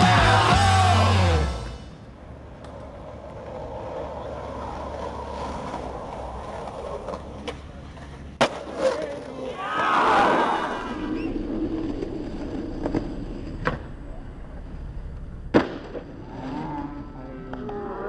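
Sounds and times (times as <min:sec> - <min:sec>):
skateboard wheels rolling on concrete: 0:00.0 - 0:18.0
skateboard clicks: 0:02.5 - 0:09.4
skateboard clacking: 0:02.5 - 0:09.5.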